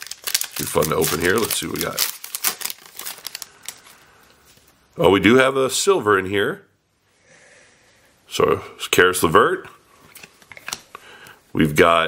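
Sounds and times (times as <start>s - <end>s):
foil wrapper crinkling and tearing: 0.0s - 4.0s.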